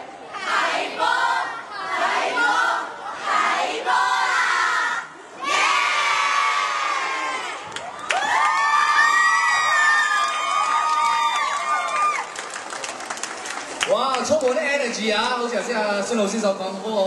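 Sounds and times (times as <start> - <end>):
high-pitched group cheering and screaming: 6.3 - 12.4.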